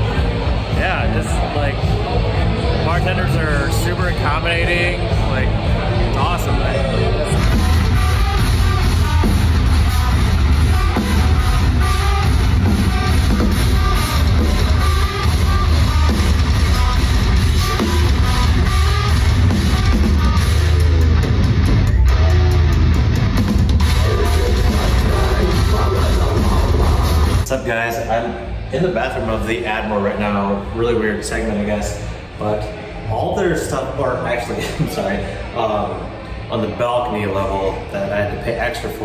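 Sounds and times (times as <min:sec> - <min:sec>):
heavy metal band playing live: 0:00.0 - 0:27.5.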